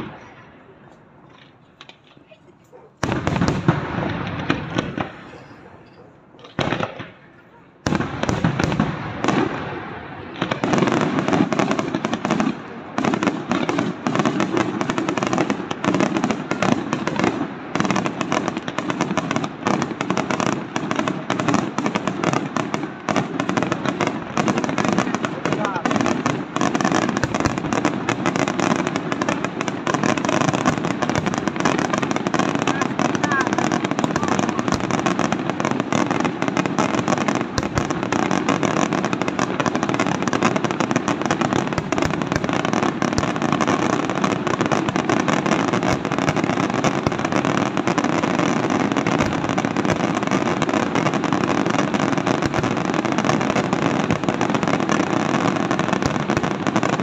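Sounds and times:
barrage of firework bangs and crackling: 0:00.0 - 0:57.0
firework shells bursting: 0:23.6 - 0:55.1.

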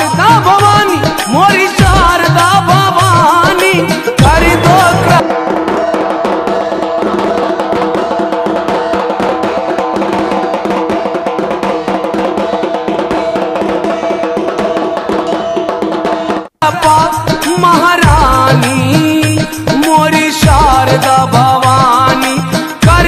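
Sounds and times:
barrel drums beaten rapidly: 0:00.0 - 0:23.0
side drum: 0:00.0 - 0:23.0.

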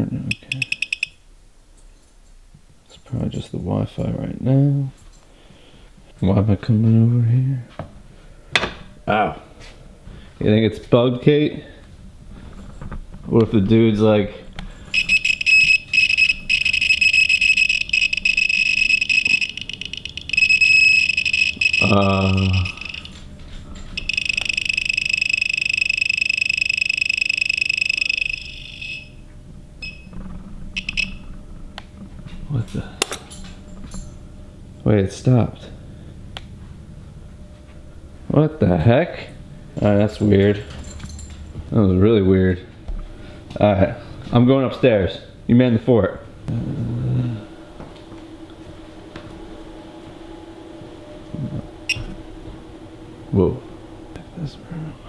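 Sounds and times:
steady low hum: 0:00.0 - 0:55.0
brief beeps: 0:00.3 - 0:01.2, 0:15.0 - 0:23.1, 0:51.9 - 0:52.2
rapidly pulsing electronic alarm tone: 0:00.3 - 0:01.2, 0:14.9 - 0:31.4, 0:48.3 - 0:54.4.

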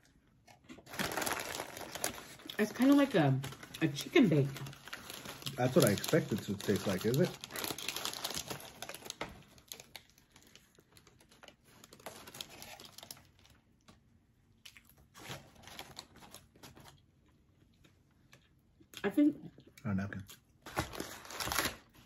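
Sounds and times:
paper wrapper crinkling: 0:00.7 - 0:13.6, 0:15.1 - 0:17.0, 0:20.6 - 0:22.0.

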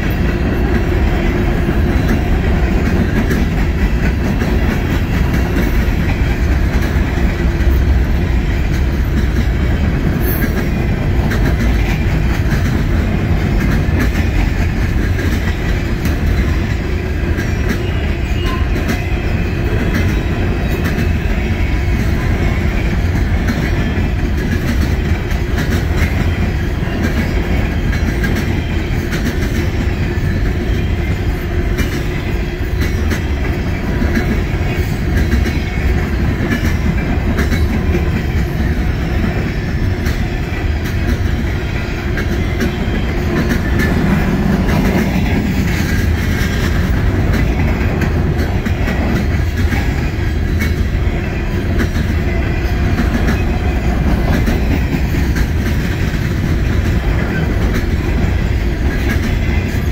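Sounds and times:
steel wheels rumbling on rail: 0:00.0 - 0:59.9
wheels clicking over rail joints: 0:00.0 - 0:59.9.

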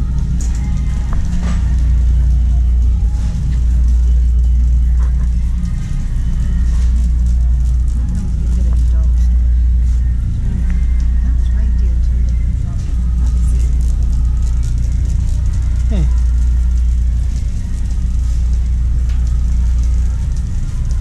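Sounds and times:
shopping cart rolling: 0:00.0 - 0:21.0.

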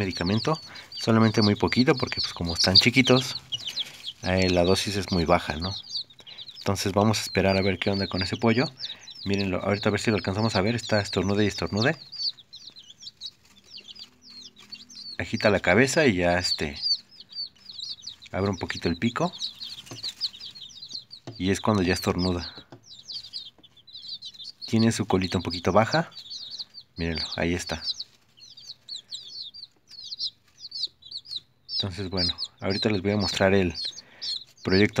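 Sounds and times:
chicks peeping: 0:00.0 - 0:35.0.

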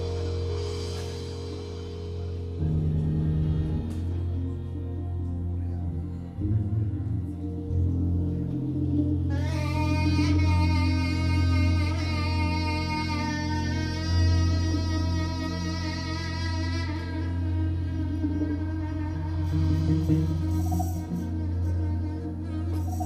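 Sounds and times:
bass: 0:00.0 - 0:23.0
keyboard: 0:00.0 - 0:23.0
saxophone holding long note: 0:00.0 - 0:23.0.

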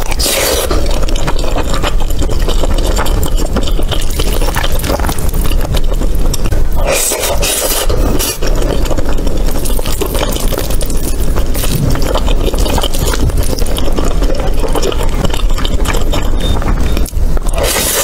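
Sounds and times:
wet chewing with mouth clicks: 0:00.0 - 0:18.0
low rumble: 0:07.9 - 0:17.6.

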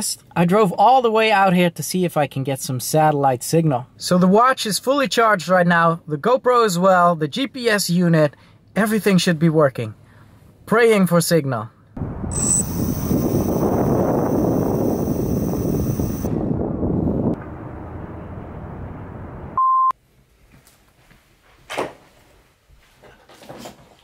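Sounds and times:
wind on microphone: 0:12.0 - 0:17.4
short beep: 0:12.3 - 0:16.3, 0:19.6 - 0:19.9
thin high-pitched whine: 0:12.3 - 0:16.3.

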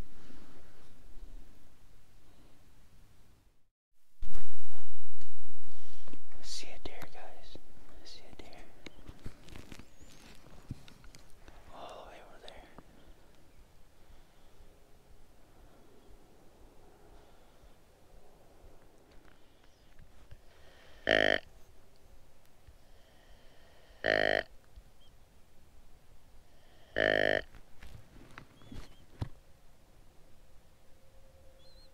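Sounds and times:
soft whispering: 0:06.3 - 0:09.2, 0:11.5 - 0:13.3
deer grunt call: 0:20.9 - 0:21.5, 0:23.9 - 0:24.5, 0:26.7 - 0:27.6.

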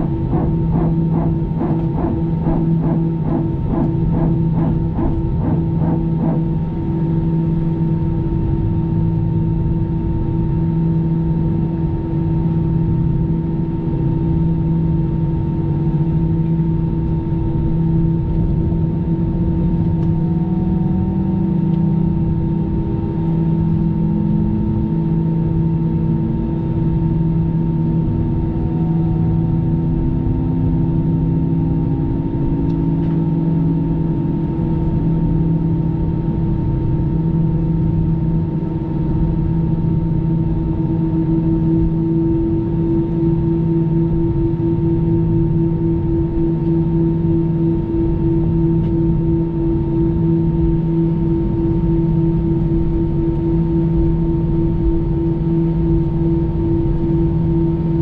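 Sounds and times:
humming tones: 0:00.0 - 0:58.0.

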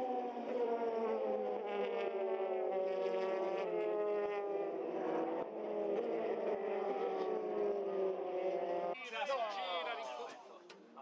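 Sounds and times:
race car engines at high revs: 0:00.0 - 0:09.0.

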